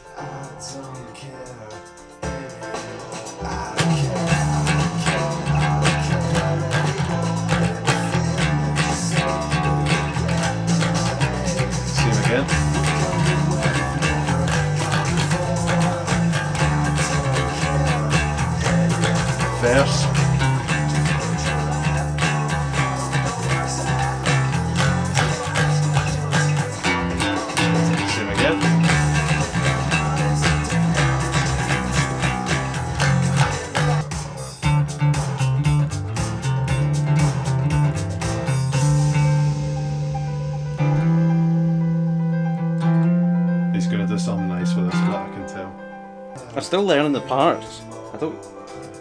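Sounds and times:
rough vocals: 0.0s - 35.6s
dance beat: 1.7s - 42.1s
electric bass playing: 2.7s - 46.6s.

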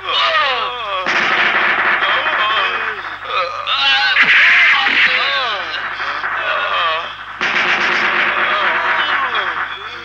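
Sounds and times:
voices crying out: 0.0s - 7.4s, 8.0s - 10.0s
loud burst of gunfire: 1.1s - 3.2s, 4.1s - 10.0s.

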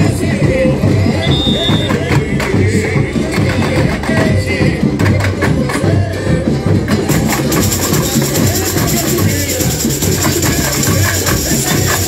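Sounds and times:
brass band playing carnival music: 0.0s - 12.0s.

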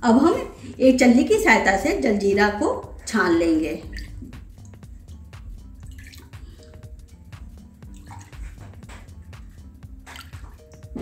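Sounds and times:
soft background music: 0.0s - 11.0s
liquid pouring through strainer: 5.8s - 6.6s.

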